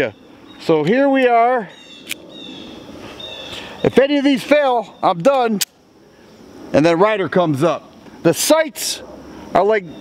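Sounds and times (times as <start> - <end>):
pistol handling click: 2.0 - 2.2.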